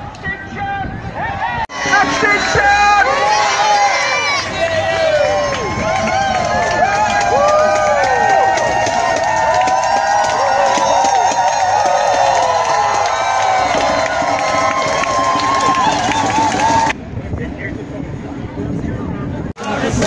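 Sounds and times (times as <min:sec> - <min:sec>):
crowd shouting: 0:01.2 - 0:17.0.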